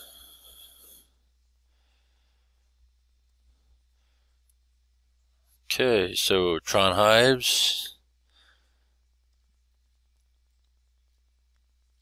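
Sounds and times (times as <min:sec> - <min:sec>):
person breathing close to microphone: 0:00.0 - 0:02.8, 0:03.5 - 0:04.5, 0:08.2 - 0:09.1.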